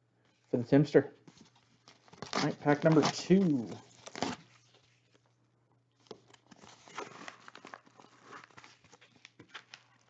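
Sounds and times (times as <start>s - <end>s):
paper rustling and crinkling: 1.2s - 5.4s, 6.0s - 10.0s
paper envelope being opened: 1.3s - 5.3s, 6.0s - 10.0s.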